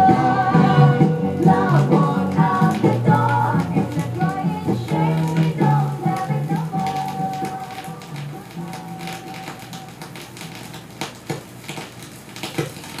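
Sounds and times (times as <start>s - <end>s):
soul song with female vocals: 0.0s - 9.9s
vinyl pops: 0.0s - 13.0s
vinyl surface crackle: 0.0s - 13.0s.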